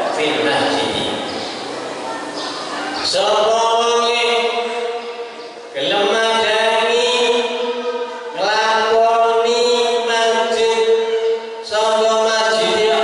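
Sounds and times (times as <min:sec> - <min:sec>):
man chanting into a microphone: 0:03.0 - 0:13.0.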